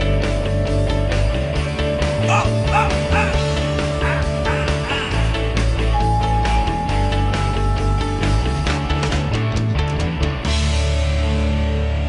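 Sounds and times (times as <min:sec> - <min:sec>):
bass and drums: 0:00.0 - 0:12.0.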